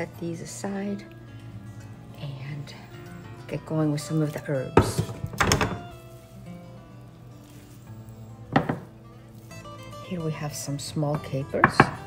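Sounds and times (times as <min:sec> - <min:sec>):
background music: 0:00.0 - 0:12.0
kitchen tools knocking on wooden board: 0:04.8 - 0:05.8, 0:08.5 - 0:08.9, 0:11.6 - 0:12.0.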